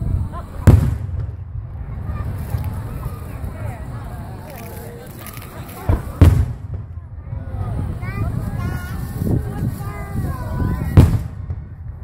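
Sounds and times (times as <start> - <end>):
firework boom: 0.0 - 3.1, 5.8 - 8.6, 10.8 - 12.0.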